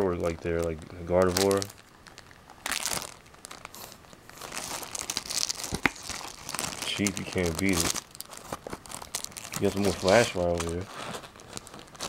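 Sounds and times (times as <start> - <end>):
plastic packs crinkling: 0.0 - 12.0.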